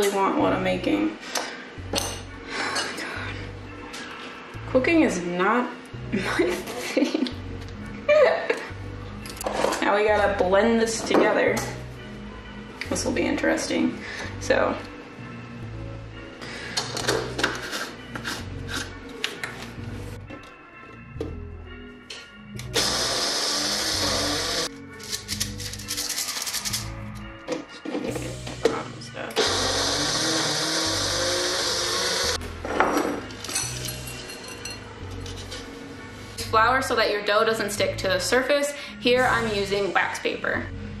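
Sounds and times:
background music with beat: 0:14.2 - 0:28.9
blender grinding: 0:22.7 - 0:24.7, 0:29.4 - 0:32.4.

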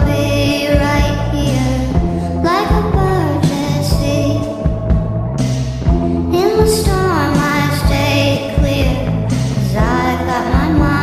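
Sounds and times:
sped-up pop song with vocals: 0:00.0 - 0:11.0.

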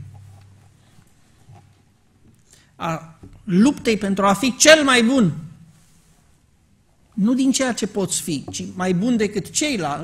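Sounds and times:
soft low knock: 0:00.0 - 0:00.7, 0:03.2 - 0:03.5, 0:08.4 - 0:08.8
man speaking: 0:02.8 - 0:05.6, 0:07.2 - 0:10.0.

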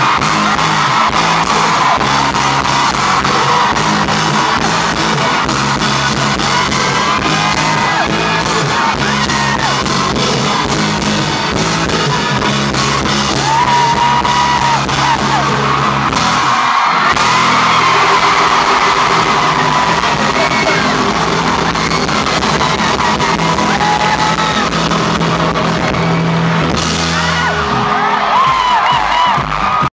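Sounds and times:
crowd cheering and whooping: 0:00.0 - 0:29.9
live band playing low chords: 0:00.0 - 0:29.9.

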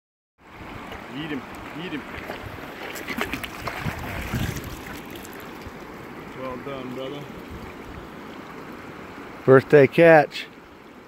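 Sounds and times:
shallow river over stones: 0:00.4 - 0:11.0
splashes and knocks: 0:01.6 - 0:05.8.

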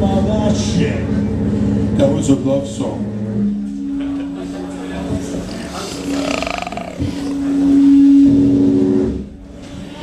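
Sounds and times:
loud droning held note: 0:02.8 - 0:09.5.

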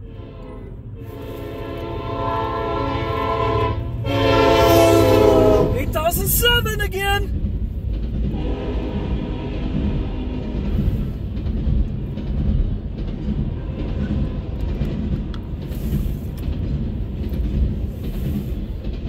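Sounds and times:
train wheels rumbling on rails: 0:00.0 - 0:19.0
wheels clicking over rail joints: 0:05.9 - 0:19.0.

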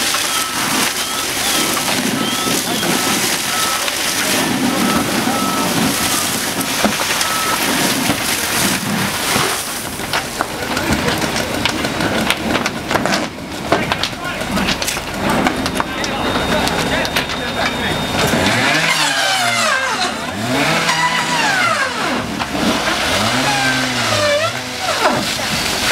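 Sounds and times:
fire crackling and knocks: 0:00.0 - 0:18.6, 0:22.2 - 0:25.9
pitched mechanical whine: 0:00.0 - 0:25.8
fire hose spraying water: 0:00.0 - 0:25.9.

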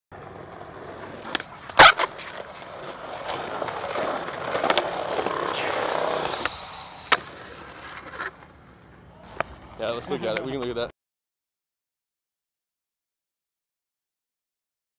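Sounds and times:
skateboard wheels rolling on concrete: 0:00.1 - 0:10.9
skateboard clacking on concrete: 0:00.2 - 0:06.5.

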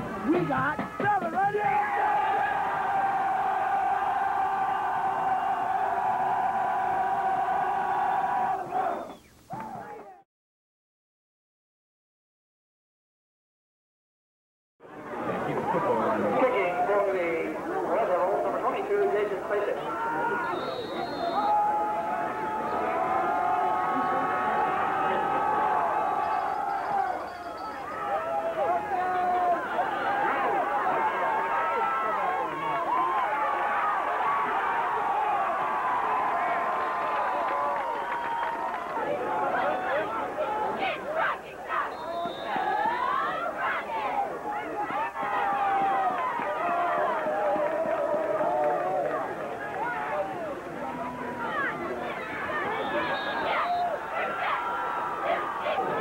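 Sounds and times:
crowd cheering and shouting: 0:00.0 - 0:10.2, 0:15.0 - 0:56.0.

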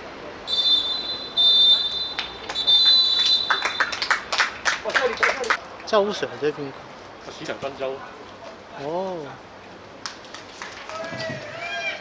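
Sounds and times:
referee's whistle blasts: 0:00.5 - 0:04.0.

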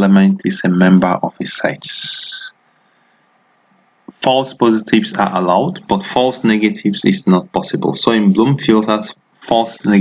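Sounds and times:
voice hiss with faint whistle: 0:01.8 - 0:03.0.

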